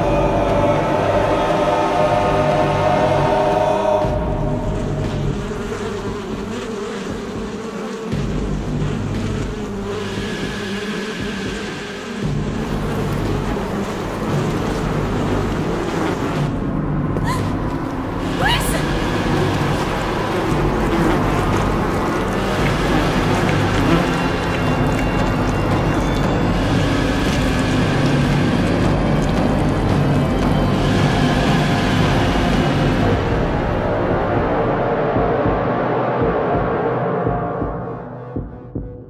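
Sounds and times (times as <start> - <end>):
insects buzzing: 3.7 - 16.6, 17.4 - 33.1.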